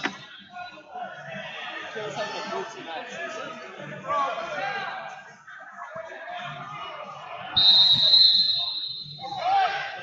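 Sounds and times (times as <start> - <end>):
referee's whistle blast: 7.6 - 9.4.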